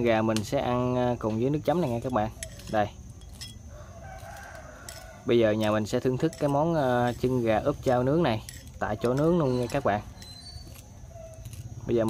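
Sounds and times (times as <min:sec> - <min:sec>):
rooster crowing faintly: 0:03.6 - 0:08.2.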